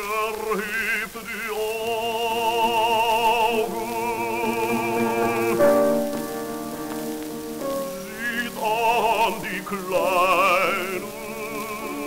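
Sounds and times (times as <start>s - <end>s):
baritone singing: 0.0s - 12.0s
record crackle and hiss: 0.0s - 12.0s
piano notes: 1.9s - 12.0s.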